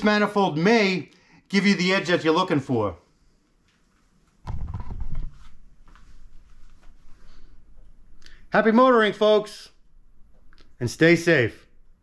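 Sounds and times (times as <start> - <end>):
rustles and small knocks: 3.6 - 7.1.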